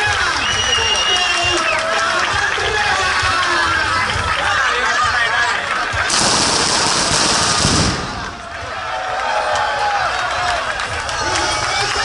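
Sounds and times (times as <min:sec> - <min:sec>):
crowd chatter: 0:00.0 - 0:12.0
firecrackers crackling: 0:06.0 - 0:08.8.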